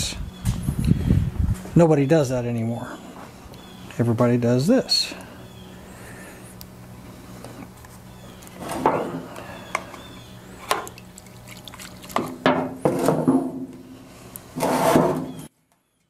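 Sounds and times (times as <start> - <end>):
steady low hum: 0.0 - 15.4
fuel sloshing in can: 10.6 - 12.4.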